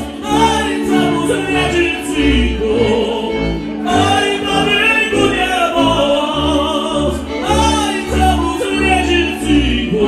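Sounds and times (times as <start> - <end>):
folk string band playing: 0.0 - 10.0
voices singing: 0.0 - 10.0.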